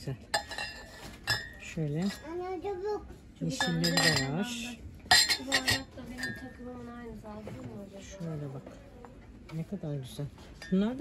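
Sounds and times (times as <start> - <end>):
ceramic mugs clinking: 0.2 - 2.2, 3.5 - 6.6.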